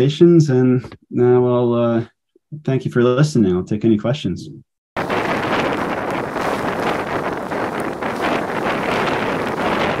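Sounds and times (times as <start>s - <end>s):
wind buffeting microphone: 5.0s - 10.0s.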